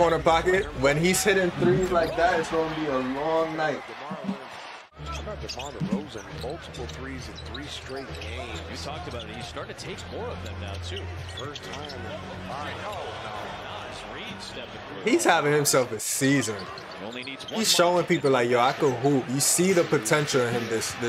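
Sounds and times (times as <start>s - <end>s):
arena crowd hum: 0.0s - 21.0s.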